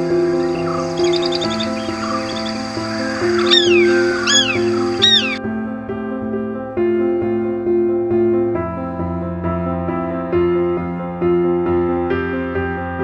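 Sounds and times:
bird calling: 0.0s - 5.4s
background music: 0.0s - 11.2s.

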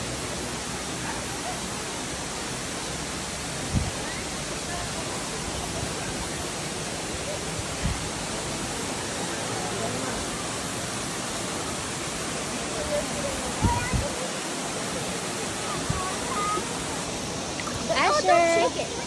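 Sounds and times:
waterfall rushing: 0.0s - 19.0s.

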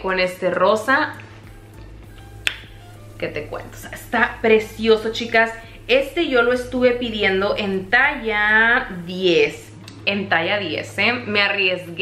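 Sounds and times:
faint background music: 0.0s - 12.0s
finger snap: 2.1s - 2.9s.

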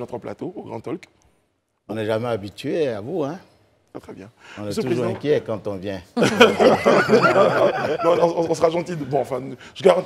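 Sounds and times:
people laughing and chuckling: 6.2s - 8.9s.

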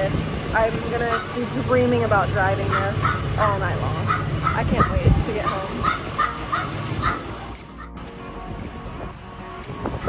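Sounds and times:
wind: 0.0s - 10.0s
small dog yapping: 4.0s - 7.9s.

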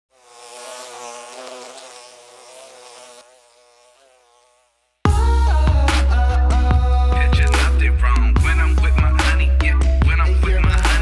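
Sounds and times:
insect buzzing: 0.1s - 7.9s.

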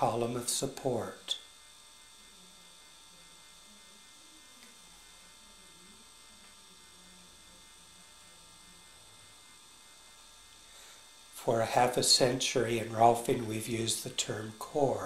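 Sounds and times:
electrical hum and whine: 0.0s - 15.0s.

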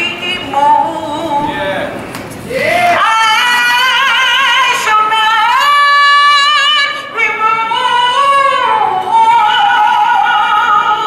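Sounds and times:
woman singing through megaphone: 0.0s - 1.6s, 2.9s - 11.0s.

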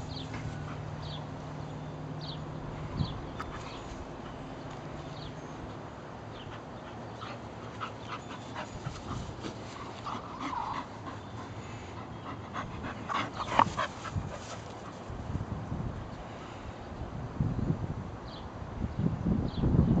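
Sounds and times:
dog panting: 0.3s - 1.2s, 6.4s - 15.1s.

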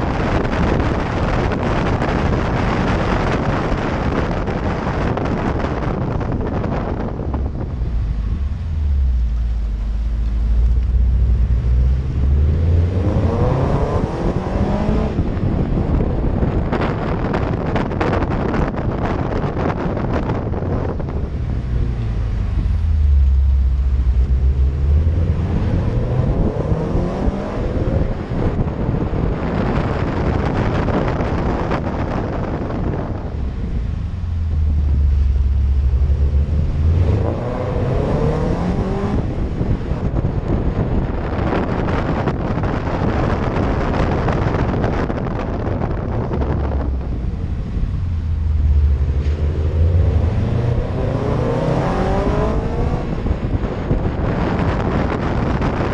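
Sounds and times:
car engine accelerating: 0.0s - 55.9s
wind and road noise: 0.0s - 55.9s.

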